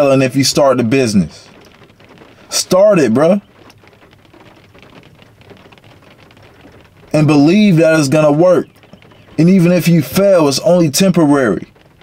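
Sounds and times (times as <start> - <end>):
small irregular ticks: 1.4 - 12.0.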